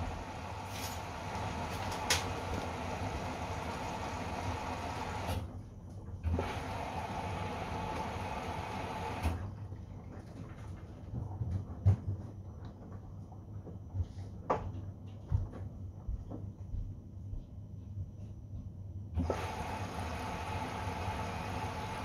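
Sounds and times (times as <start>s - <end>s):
washing machine water inflow: 0.0s - 5.6s, 6.2s - 14.1s, 19.2s - 22.0s.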